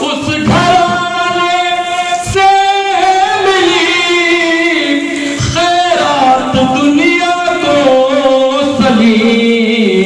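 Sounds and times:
man singing into a microphone: 0.0s - 10.0s.

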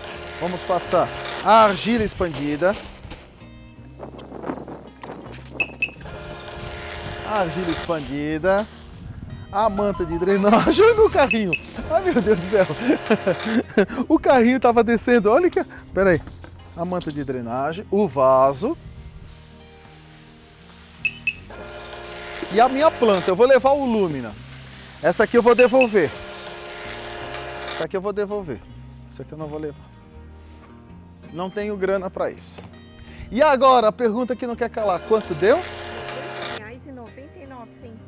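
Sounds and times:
faint background music: 0.0s - 38.0s
barcode scanner beeps: 5.6s - 6.1s, 11.2s - 11.8s, 21.0s - 21.5s, 25.5s - 26.2s.

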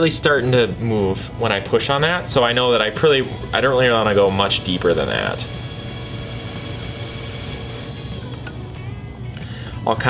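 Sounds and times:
pottery wheel motor hum: 3.1s - 9.4s.

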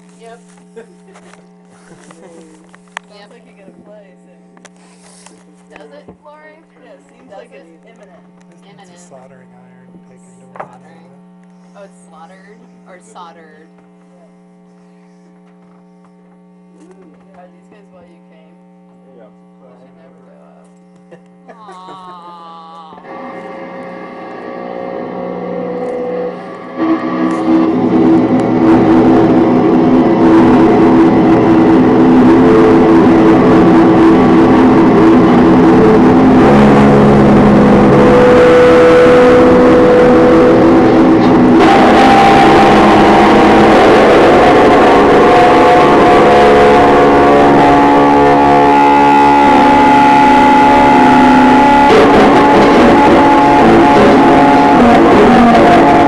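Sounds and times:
amplified layered drones: 0.5s - 18.5s, 19.1s - 56.0s.

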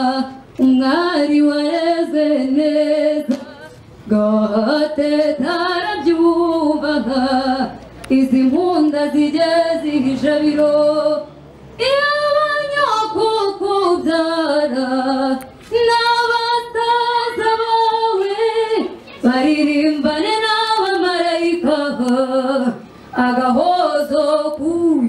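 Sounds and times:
woman singing into microphone: 0.0s - 25.0s.

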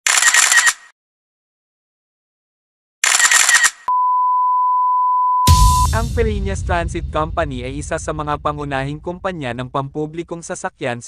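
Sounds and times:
steady electronic beep: 3.9s - 6.2s
music: 5.5s - 9.6s.

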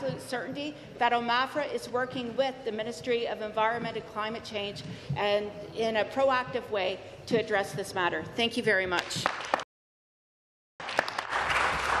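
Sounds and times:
people applauding: 9.2s - 9.7s, 10.8s - 12.0s.

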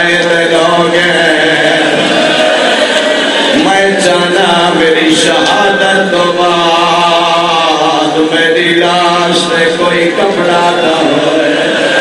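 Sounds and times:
man chanting a lament: 0.0s - 2.6s, 3.5s - 12.0s.

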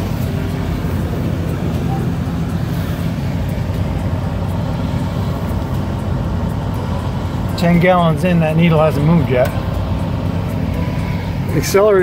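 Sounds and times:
motorhome engine humming: 0.0s - 12.0s.

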